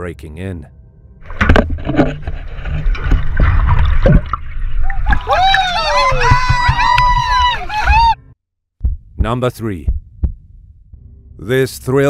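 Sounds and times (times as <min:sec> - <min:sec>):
seawater sloshing and splashing: 0:01.2 - 0:07.2
deep underwater rushing: 0:01.2 - 0:07.7.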